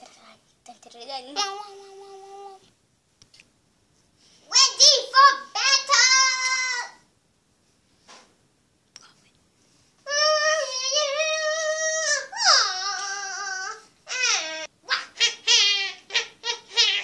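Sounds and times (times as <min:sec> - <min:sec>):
child's wordless high voice: 0:00.0 - 0:02.7, 0:04.4 - 0:07.0, 0:10.1 - 0:17.0.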